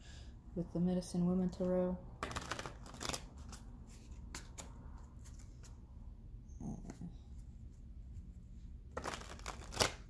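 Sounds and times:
cards being shuffled: 0:02.2 - 0:05.8, 0:08.9 - 0:10.0.

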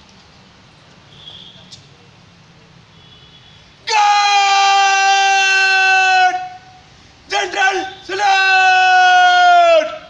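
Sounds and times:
person shouting a command: 0:03.8 - 0:06.7, 0:07.3 - 0:10.0.

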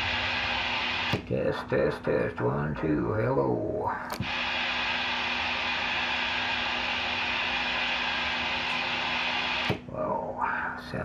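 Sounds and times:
radio receiver hissing: 0:00.0 - 0:10.2
sharp click: 0:04.1 - 0:04.3.

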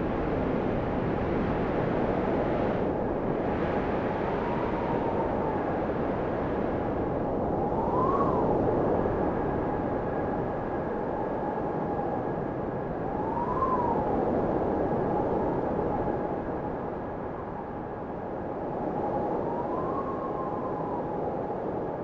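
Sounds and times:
rushing wind-like noise: 0:00.0 - 0:22.0.

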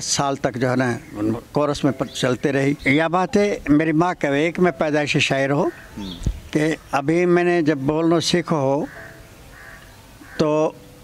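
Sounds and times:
man speaking: 0:00.0 - 0:08.9
distant crow caws: 0:05.5 - 0:06.4, 0:08.7 - 0:10.8.

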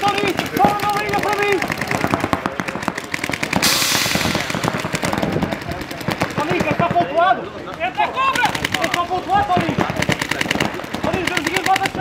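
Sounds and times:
paintball markers firing: 0:00.0 - 0:12.0.

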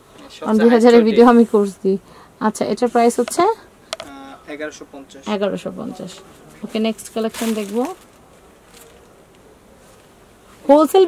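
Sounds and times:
faint background hum: 0:00.0 - 0:11.0.

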